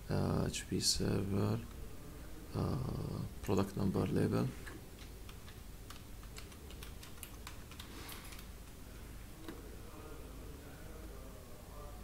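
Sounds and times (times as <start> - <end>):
computer keyboard typing: 5.0 - 8.5.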